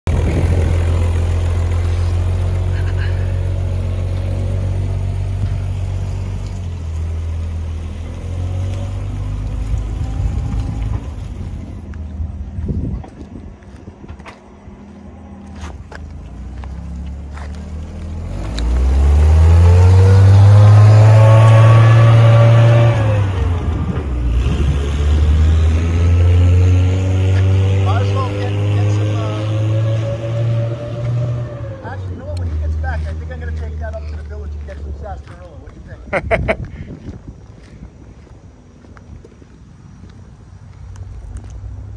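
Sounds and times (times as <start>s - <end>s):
petrol engine running: 0.1s - 12.4s.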